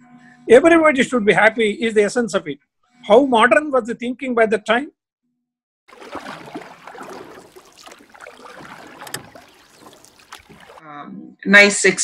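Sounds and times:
water splashing and rushing: 5.9s - 10.8s.

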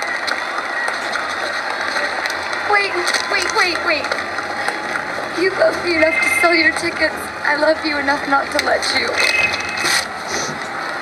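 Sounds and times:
crowd voices chattering: 0.0s - 11.0s.

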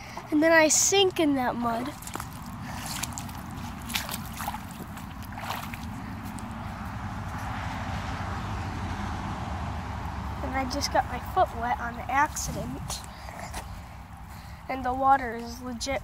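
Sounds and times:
water sloshing and gurgling: 0.0s - 7.8s, 10.3s - 16.0s
foot stepping through mud: 1.7s - 7.6s.

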